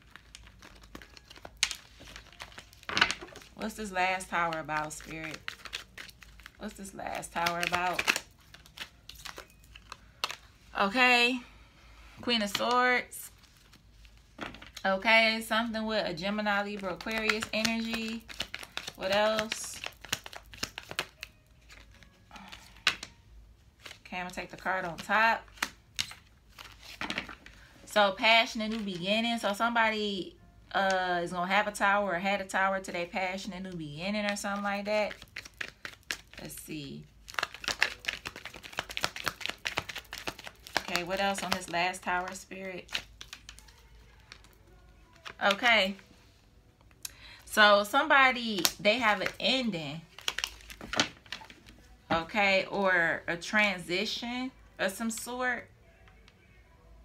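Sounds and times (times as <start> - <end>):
cards being shuffled by hand: 0.1 - 10.4, 16.4 - 23.2, 34.3 - 36.6, 37.3 - 44.5
woman speaking: 3.6 - 5.4, 6.6 - 8.1, 10.7 - 11.5, 12.2 - 13.4, 14.8 - 18.2, 19.0 - 19.8, 24.1 - 25.4, 27.9 - 35.2, 36.4 - 37.1, 40.8 - 42.9, 45.2 - 46.1, 47.5 - 50.1, 52.0 - 55.7.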